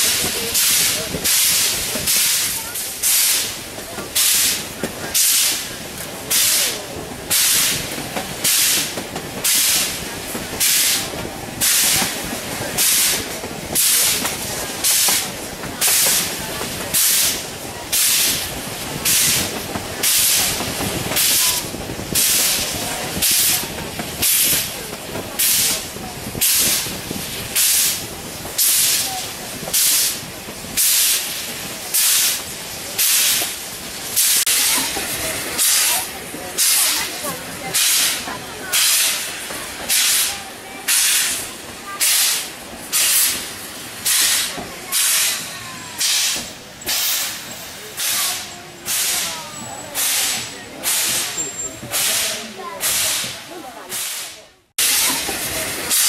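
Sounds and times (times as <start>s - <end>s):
steam locomotive chuffing: 0.0s - 56.0s.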